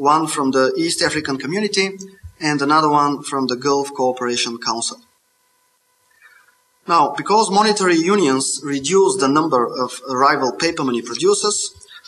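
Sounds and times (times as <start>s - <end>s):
man speaking: 0.0s - 5.1s, 6.8s - 12.0s.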